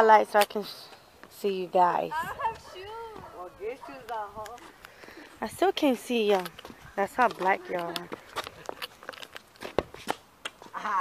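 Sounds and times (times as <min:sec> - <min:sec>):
woman speaking: 0:00.0 - 0:04.7, 0:05.4 - 0:08.2.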